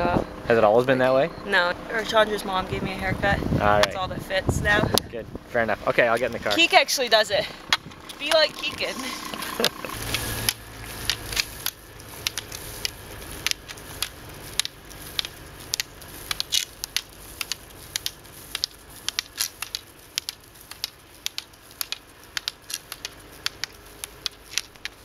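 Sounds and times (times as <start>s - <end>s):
faint road noise: 0.0s - 25.0s
low rumble: 1.2s - 25.0s
pole tips clicking on asphalt: 6.0s - 25.0s.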